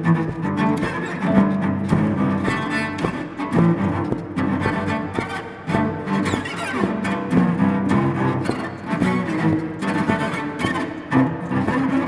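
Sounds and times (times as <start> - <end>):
solo cello bowing: 0.0 - 12.0.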